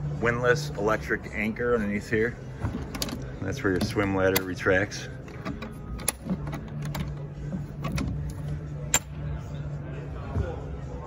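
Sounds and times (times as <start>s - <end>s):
hatch latch clicks and knocks: 5.3s - 9.1s.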